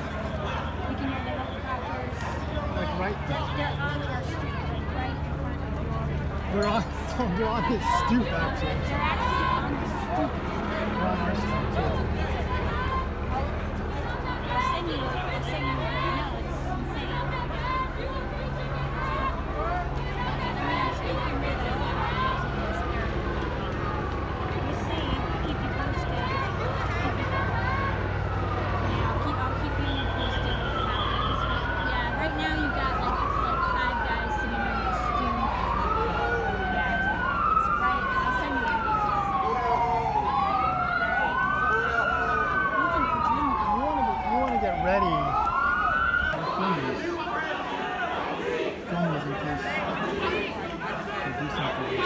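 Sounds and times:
police siren wailing: 0.0 - 52.0.

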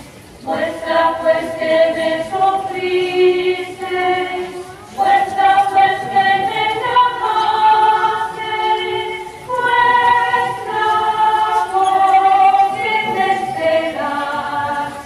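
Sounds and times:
choir singing a hymn: 0.4 - 15.0.

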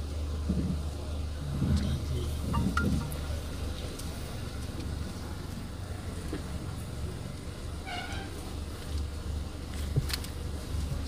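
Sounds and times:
car cabin low rumble: 0.0 - 11.0
high-pitched tone: 2.4 - 3.3.

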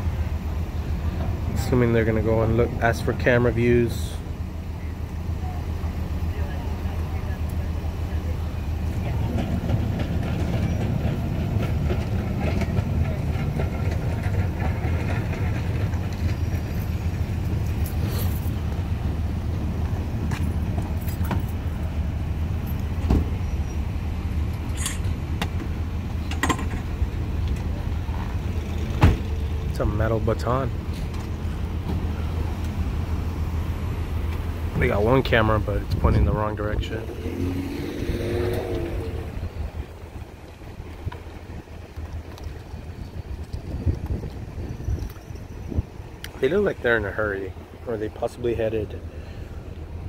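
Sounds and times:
faint voices: 0.0 - 16.1
idling engine rumble: 0.0 - 50.0.

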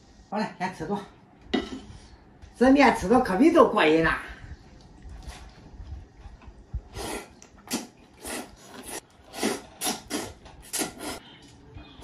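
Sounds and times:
person slurping noodles: 6.9 - 11.2.

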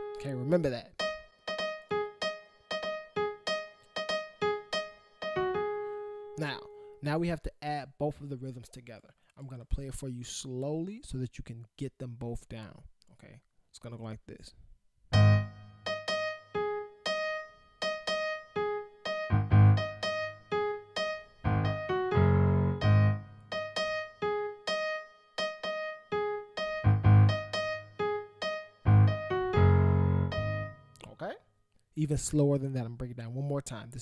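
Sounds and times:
slow piano riff: 1.0 - 6.9, 15.1 - 31.0.

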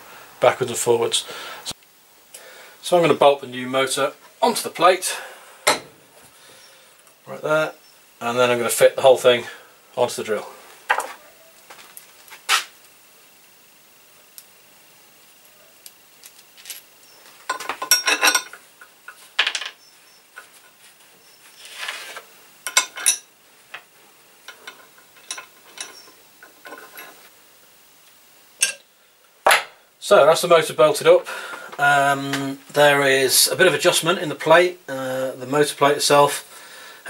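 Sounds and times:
tools and bolts clinking: 16.2 - 20.6, 22.6 - 23.9, 24.5 - 27.2, 28.6 - 28.8.

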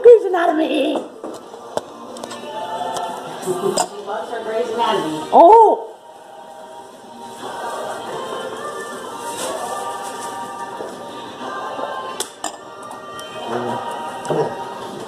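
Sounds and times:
choral music: 1.1 - 15.0.

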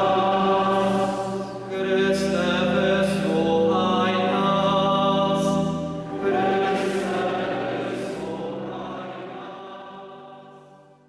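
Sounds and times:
choir singing chords: 0.0 - 11.0.

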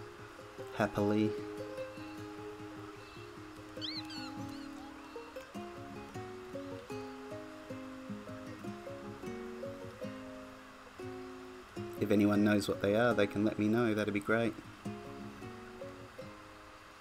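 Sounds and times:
plucked-string tune: 0.0 - 16.7
high chirp: 1.9 - 5.6.

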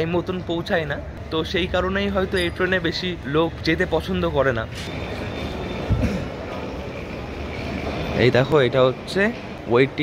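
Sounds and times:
rumbling background noise: 0.0 - 10.0.

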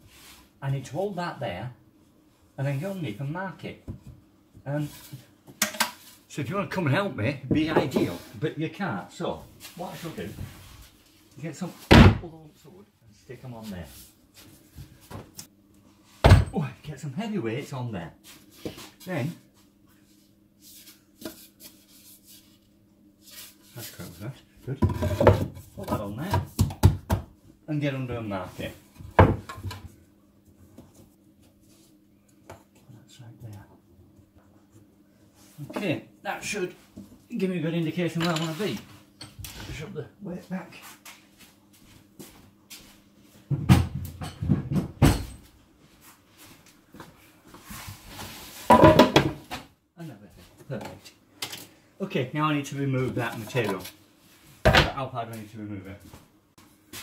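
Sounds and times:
wooden boards knocking and clattering: 48.7 - 49.6.

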